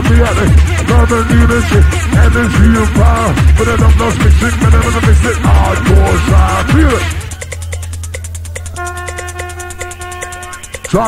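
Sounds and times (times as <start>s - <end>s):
deep bass note: 0.0s - 11.0s
rapid hi-hats: 0.0s - 11.0s
held synth note: 5.4s - 11.0s.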